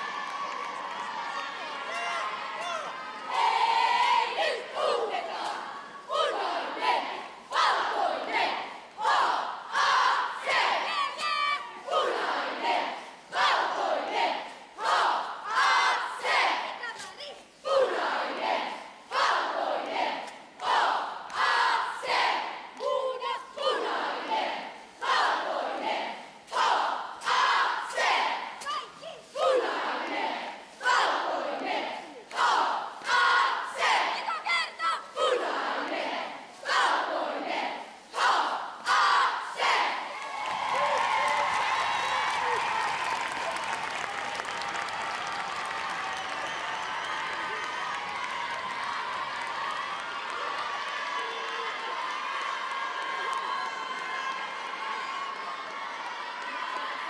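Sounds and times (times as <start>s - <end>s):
cheerleading squad chanting: 0.0s - 57.0s.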